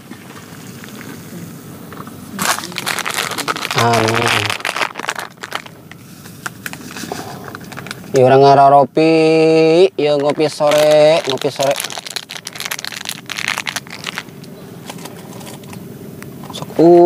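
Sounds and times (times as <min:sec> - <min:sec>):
crinkling of something handled: 0:01.9 - 0:08.3, 0:10.1 - 0:15.8.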